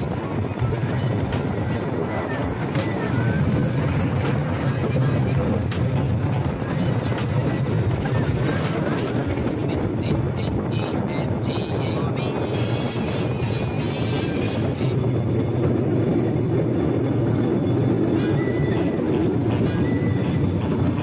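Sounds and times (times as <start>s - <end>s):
train running on rails: 0.0s - 21.0s.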